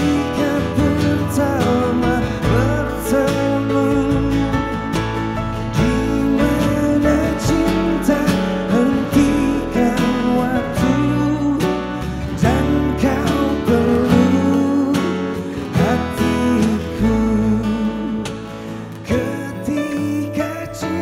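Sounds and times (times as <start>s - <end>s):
keyboard: 0.0s - 21.0s
man singing into microphone: 0.0s - 21.0s
strummed acoustic guitars: 0.0s - 21.0s.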